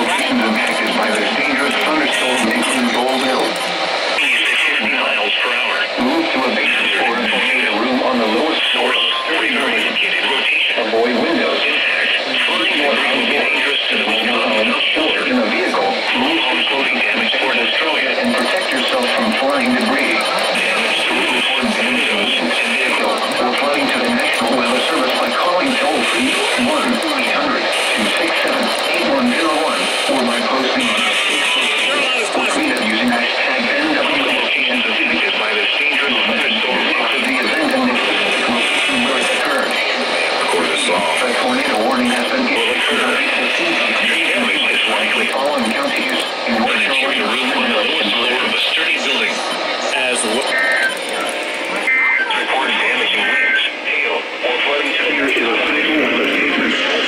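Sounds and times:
voice over radio music: 0:00.0 - 0:57.0.

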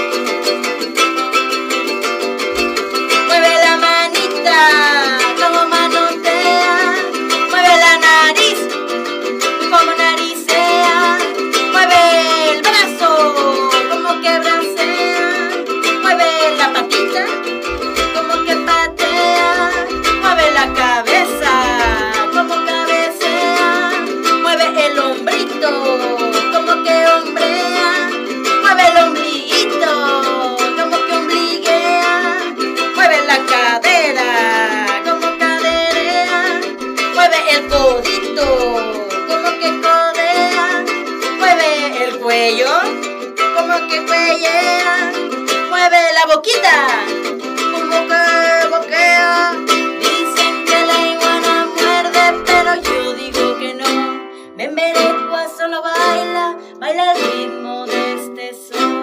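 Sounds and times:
strummed ukulele: 0:00.0 - 0:59.0
woman singing children's song: 0:02.6 - 0:08.8, 0:09.4 - 0:59.0.

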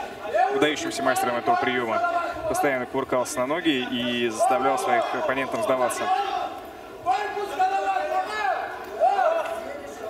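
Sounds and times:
man shouting: 0:00.2 - 0:02.7, 0:03.9 - 0:09.5.

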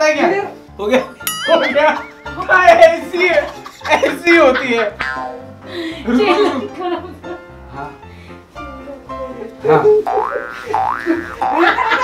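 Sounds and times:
playful plucked-string music: 0:00.9 - 0:04.2, 0:05.0 - 0:05.5, 0:09.6 - 0:12.0.

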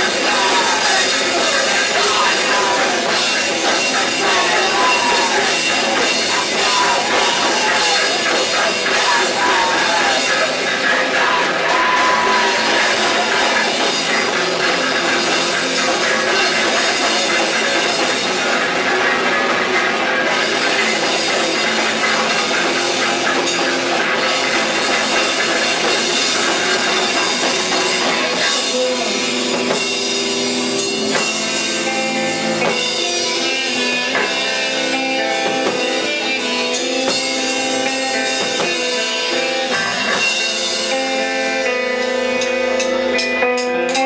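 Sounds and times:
drums and cymbals: 0:00.0 - 0:44.0
electric guitar: 0:00.0 - 0:44.0
rock band playing live: 0:00.0 - 0:44.0.

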